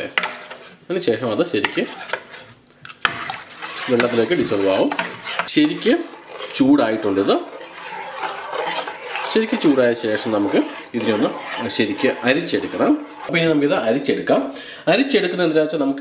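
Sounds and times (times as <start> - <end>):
spoon stirring thick liquid: 0.0 - 15.4.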